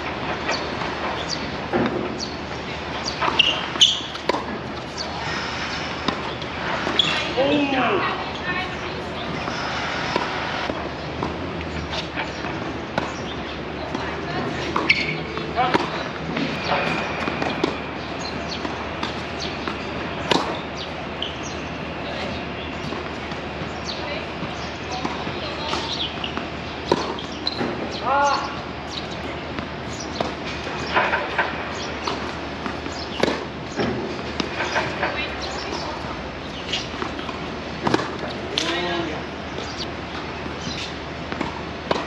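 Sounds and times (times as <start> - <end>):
racquets hitting tennis balls: 0.0 - 42.0
tennis balls bouncing on court: 0.0 - 42.0.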